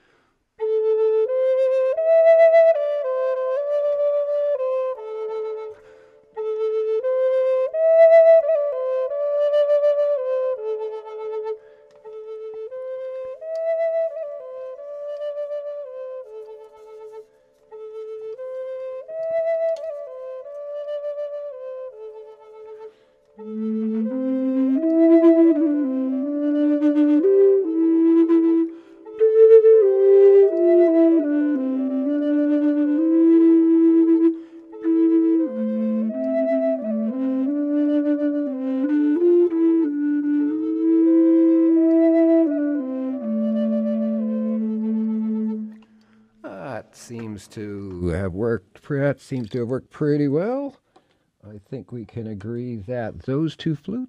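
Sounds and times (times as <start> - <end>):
looped high flute melody: 0.0 - 50.7
low flute harmonizing: 0.0 - 50.8, 51.5 - 54.0.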